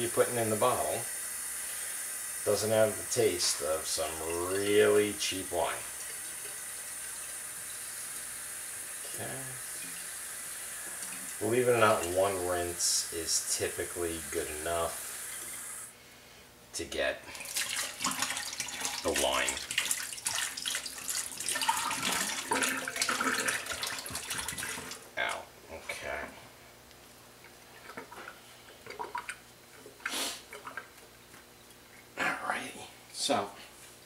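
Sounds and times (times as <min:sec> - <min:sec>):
kitchen tap running into sink: 0:02.6 - 0:08.3, 0:08.9 - 0:12.6, 0:17.3 - 0:25.0
bottle being rinsed: 0:17.3 - 0:25.0, 0:27.8 - 0:31.1.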